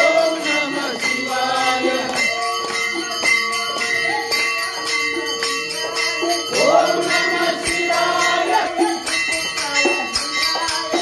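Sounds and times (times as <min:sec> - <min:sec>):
brass bell ringing: 0:00.0 - 0:11.0.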